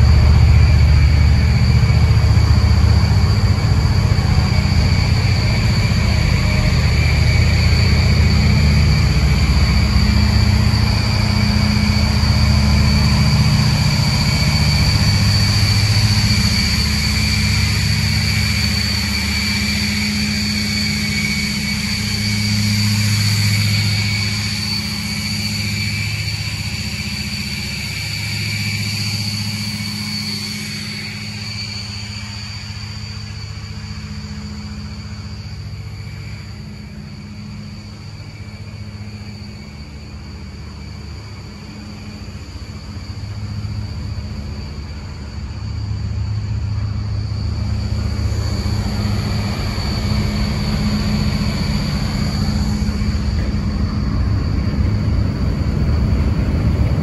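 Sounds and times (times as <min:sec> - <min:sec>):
boat diesel engines droning: 0:00.0 - 0:57.0
high whine: 0:00.0 - 0:57.0
rush of wind and water: 0:53.3 - 0:57.0.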